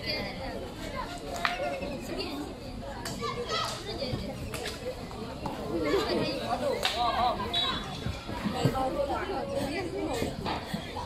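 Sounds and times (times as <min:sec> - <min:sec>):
girls calling out and chattering: 0:00.0 - 0:11.0.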